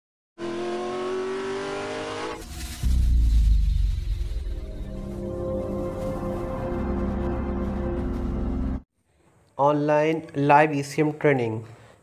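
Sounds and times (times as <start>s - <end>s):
car engine revving: 0.4s - 7.2s
short rushing noise: 2.3s - 6.5s
loud deep rumble: 2.4s - 8.8s.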